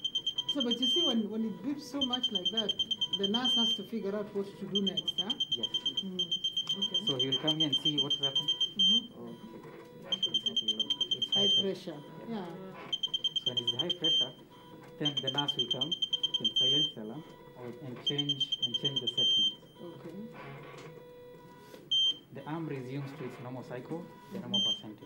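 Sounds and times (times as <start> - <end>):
alarm high-pitched beeps: 0.0 - 12.2, 12.9 - 14.4, 15.0 - 17.0, 18.0 - 19.9, 24.5 - 24.9.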